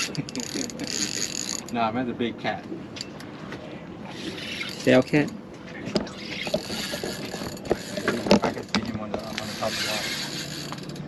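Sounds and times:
fishing reel drag clicking: 0.0 - 1.8, 4.1 - 5.3, 6.4 - 11.0.

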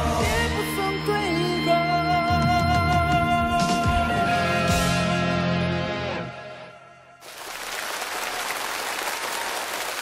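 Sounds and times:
audience applauding: 7.2 - 10.0.

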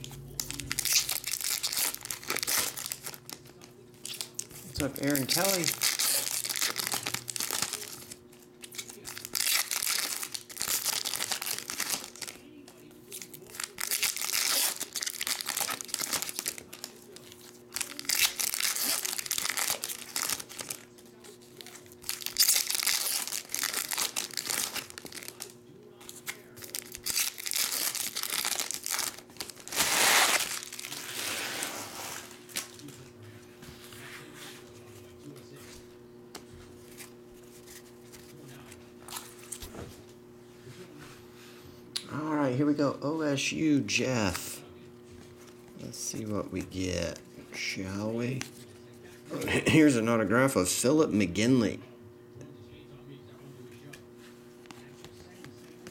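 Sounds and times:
low hum: 0.0 - 3.9
foil wrappers crinkling and tearing: 0.1 - 33.1, 45.2 - 49.3.

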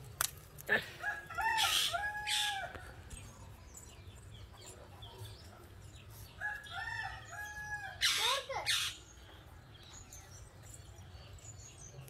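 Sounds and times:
rooster crowing: 1.0 - 2.8
small birds chirping: 1.6 - 12.0.

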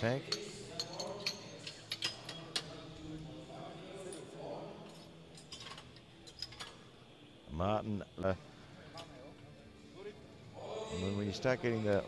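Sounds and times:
faint background voices: 0.0 - 7.2, 8.4 - 12.0.

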